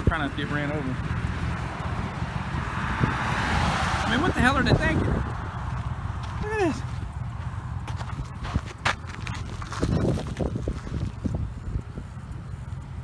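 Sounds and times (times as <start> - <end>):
footsteps crunching on gravel: 5.4 - 11.5.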